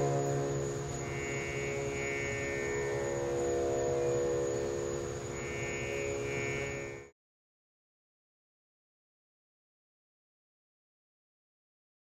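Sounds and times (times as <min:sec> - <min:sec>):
sustained instrumental drone: 0:00.0 - 0:07.1.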